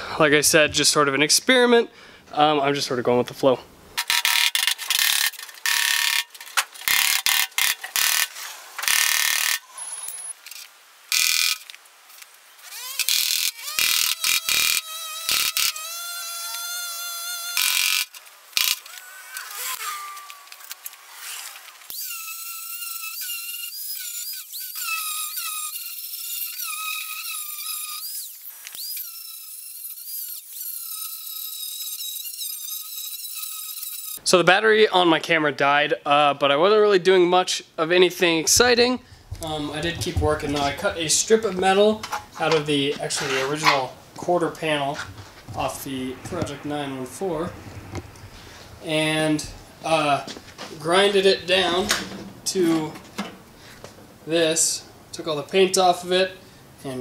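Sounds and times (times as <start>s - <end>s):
angle grinder whine: 12.7s - 34.2s.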